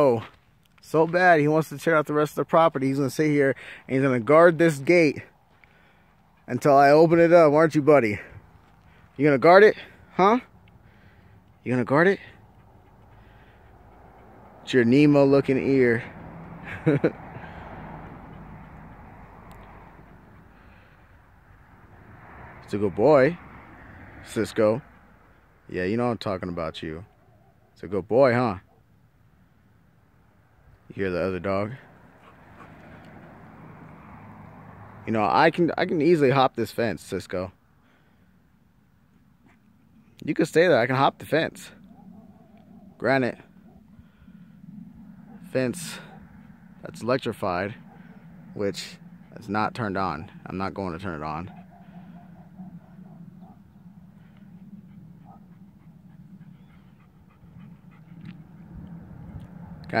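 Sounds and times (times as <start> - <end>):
dog panting softly: 12.3 - 14.7, 51.5 - 59.5
distant dog barking: 27.0 - 27.8, 41.8 - 59.8
steady low hum: 41.7 - 59.8.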